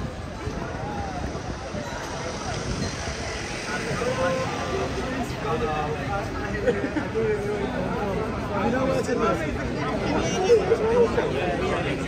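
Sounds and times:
people talking: 0.0 - 12.0
traffic rumble: 0.0 - 12.0.

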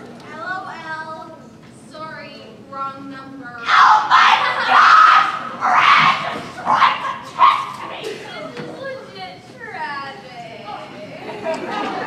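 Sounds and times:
person yelling harshly: 3.6 - 7.6.

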